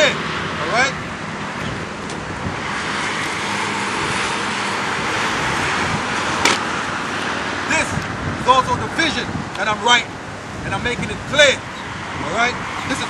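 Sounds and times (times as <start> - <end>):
road traffic passing: 0.0 - 13.0.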